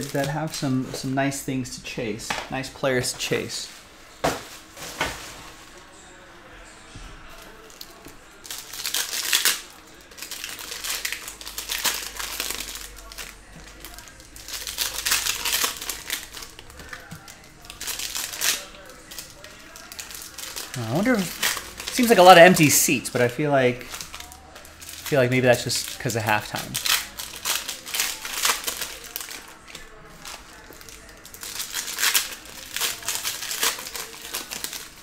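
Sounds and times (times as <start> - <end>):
card pack wrappers crinkling: 0.0 - 1.0, 7.2 - 35.0.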